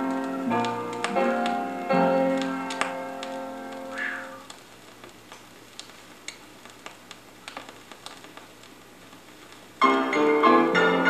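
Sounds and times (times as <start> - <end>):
vinyl clicks and pops: 0.0 - 10.1
vinyl record hiss: 0.0 - 11.0.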